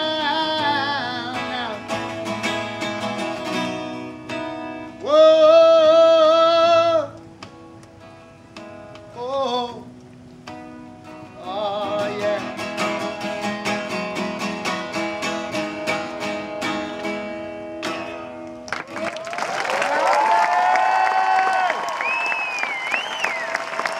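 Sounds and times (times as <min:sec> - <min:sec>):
man singing: 0:00.0 - 0:02.2, 0:04.9 - 0:07.2, 0:09.1 - 0:09.9, 0:11.4 - 0:13.9
guitar strummed hard: 0:00.0 - 0:07.6, 0:10.5 - 0:18.7
audience applauding and cheering: 0:18.6 - 0:23.9
whistles from audience: 0:21.4 - 0:23.9.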